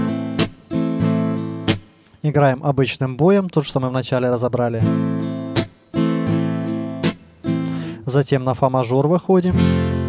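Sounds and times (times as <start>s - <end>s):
acoustic guitar strumming: 0.0s - 2.2s, 4.6s - 8.2s, 9.5s - 10.0s.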